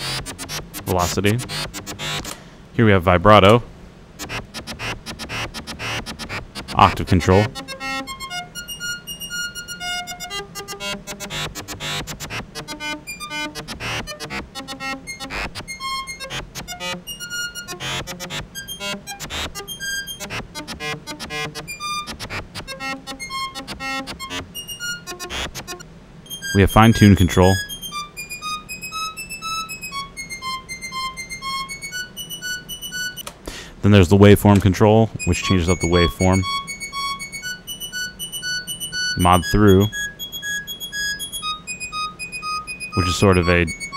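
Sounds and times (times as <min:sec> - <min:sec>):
synthesizer playing short notes: 0:00.0 - 0:02.4, 0:04.2 - 0:33.2, 0:34.8 - 0:43.9.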